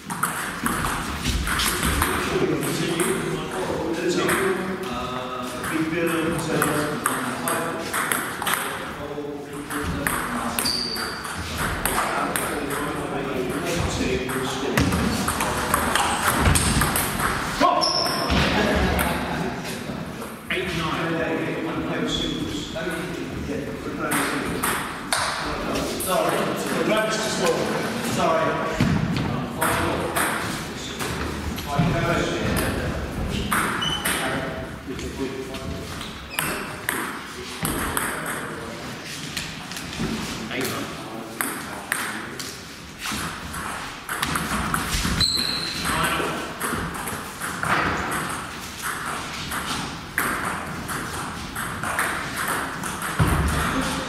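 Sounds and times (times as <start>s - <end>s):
people talking: 1.6s - 42.6s, 45.8s - 48.3s, 53.1s - 54.0s.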